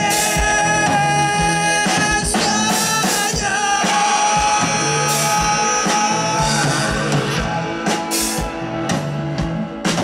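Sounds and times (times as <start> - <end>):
live electro-pop band: 0.0 - 10.0.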